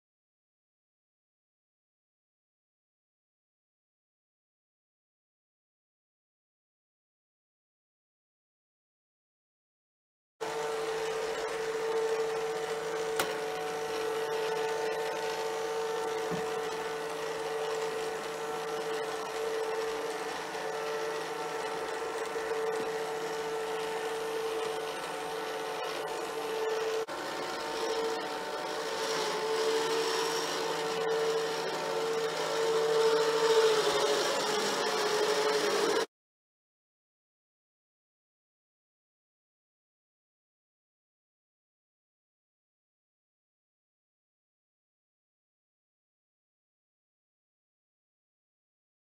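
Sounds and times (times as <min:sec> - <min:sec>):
vacuum cleaner motor whine: 0:10.4 - 0:36.1.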